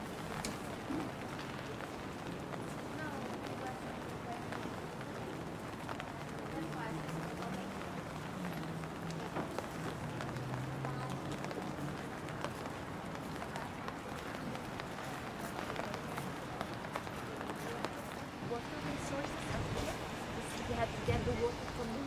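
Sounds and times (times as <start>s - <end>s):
people talking: 2.8s - 5.2s, 6.3s - 22.0s.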